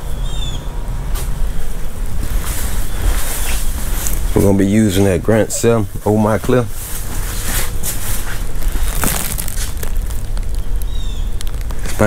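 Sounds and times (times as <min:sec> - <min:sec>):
steady low rumble: 0:00.0 - 0:12.0
footsteps: 0:01.2 - 0:05.2
rustling handling noise: 0:01.2 - 0:12.0.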